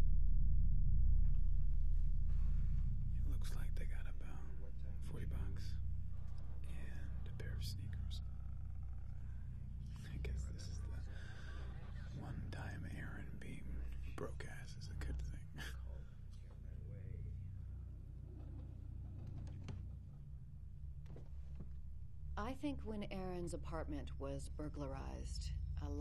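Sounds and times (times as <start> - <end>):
steady low hum: 0.0 - 26.0
faint indistinct speech: 3.2 - 5.8, 6.5 - 8.8, 9.9 - 17.3.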